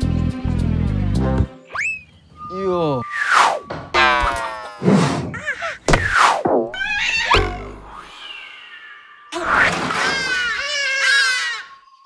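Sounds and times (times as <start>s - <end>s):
background music: 0.0s - 1.7s
slide whistle swoops: 1.7s - 3.8s
cartoon boings: 6.5s - 8.1s.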